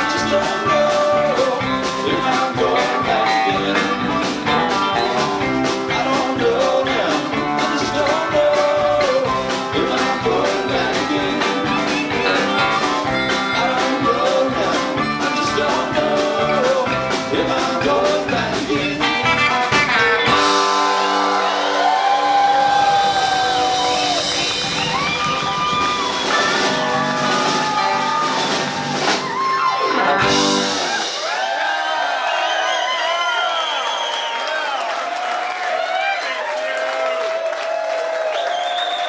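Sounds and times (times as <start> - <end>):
live rock band playing: 0.0 - 32.3
crowd cheering and whooping: 20.6 - 39.0.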